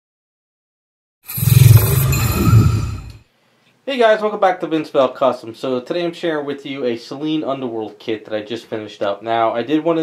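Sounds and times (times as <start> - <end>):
logo intro rumble with hiss: 1.3 - 3.2.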